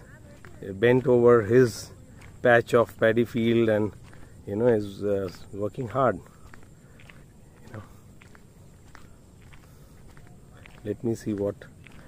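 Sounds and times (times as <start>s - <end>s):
footsteps on paved road: 0.0s - 12.0s.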